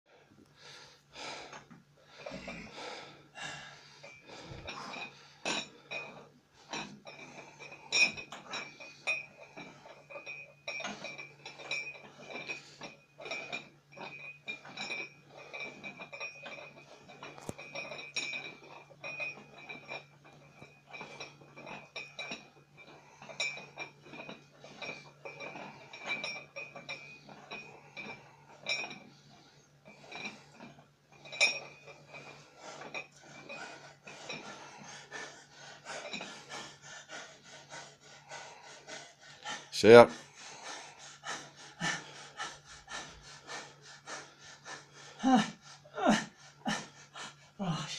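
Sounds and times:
weight plates clinking: 3.7s - 45.4s.

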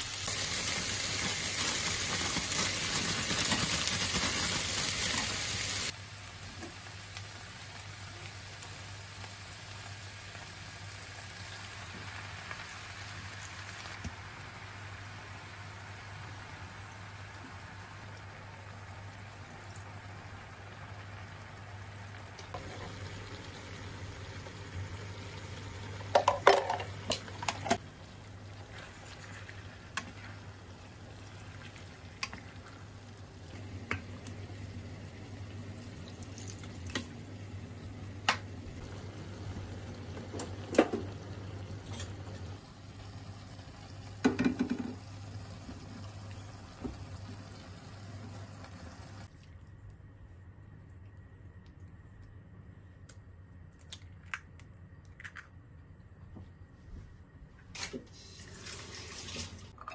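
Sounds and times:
noodles sizzling in a pan: 0.0s - 49.3s, 57.8s - 59.8s.

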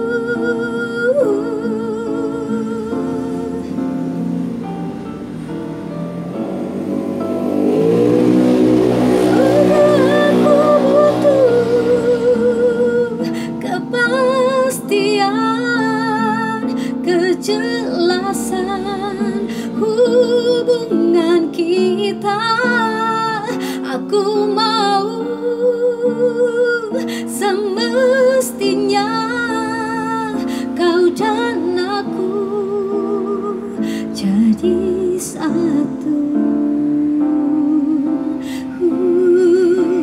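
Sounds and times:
woman singing: 0.0s - 4.6s, 8.9s - 40.0s
pop ballad backing music: 0.0s - 40.0s
guitar accompaniment: 1.3s - 26.0s.

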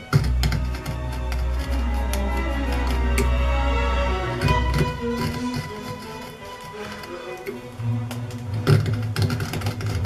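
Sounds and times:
background music with low notes: 0.0s - 10.0s
gouge scraping wood: 0.0s - 10.0s.

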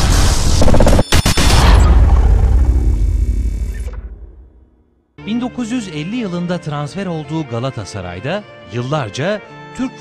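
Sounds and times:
deep boom: 0.0s - 5.0s.

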